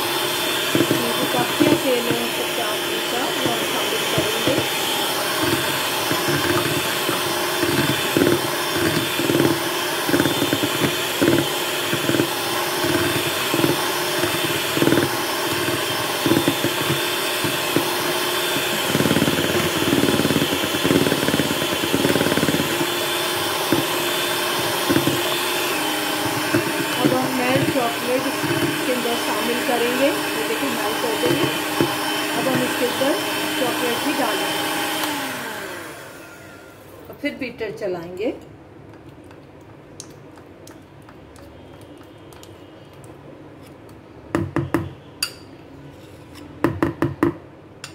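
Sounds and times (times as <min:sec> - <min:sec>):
electric hand mixer whipping batter: 0:00.0 - 0:36.8.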